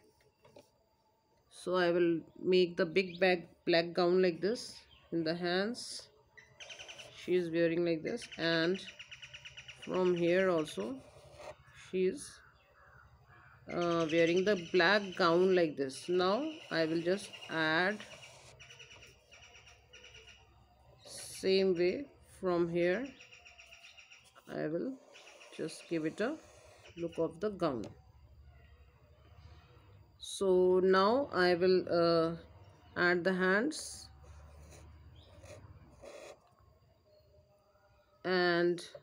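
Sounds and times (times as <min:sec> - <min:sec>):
faint bird chirping: 0:00.0 - 0:39.0
marker scratching on paper: 0:10.4 - 0:11.7, 0:16.3 - 0:19.8, 0:24.2 - 0:27.1, 0:34.2 - 0:36.5.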